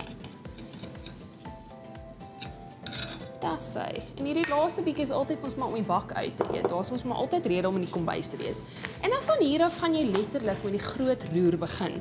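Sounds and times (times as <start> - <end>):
spoon scraping a bowl: 0.0 - 1.6, 2.2 - 3.4, 5.4 - 12.0
background music with held notes: 0.0 - 12.0.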